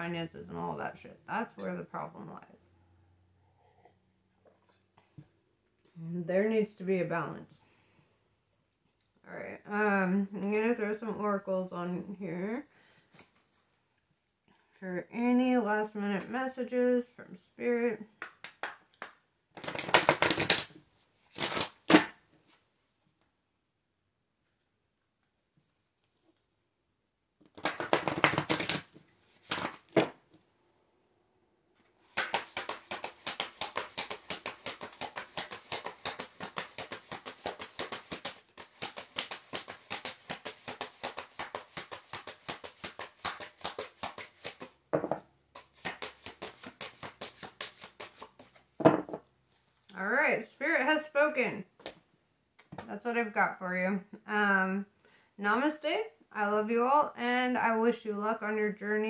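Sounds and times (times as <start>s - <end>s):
cards being shuffled: 19.6s - 22.1s, 27.4s - 30.2s, 32.0s - 44.8s, 45.6s - 48.7s.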